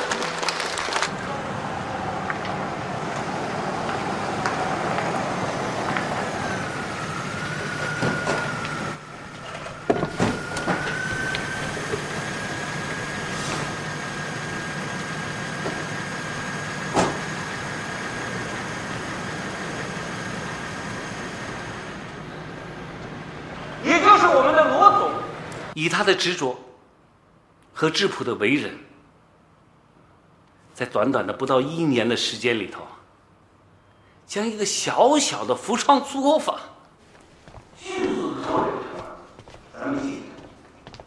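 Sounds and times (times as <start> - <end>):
car engine idling: 1.1 - 23.8
car door shutting: 16.8 - 17.4.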